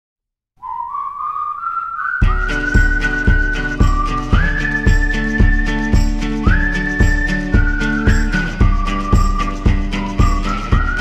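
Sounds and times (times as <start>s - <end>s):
person whistling rising note: 0.6s - 11.0s.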